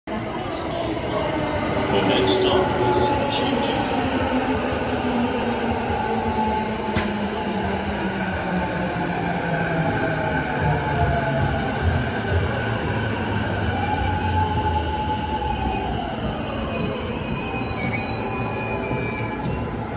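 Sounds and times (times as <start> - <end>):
train wheels rumbling on rails: 0.3 - 19.9.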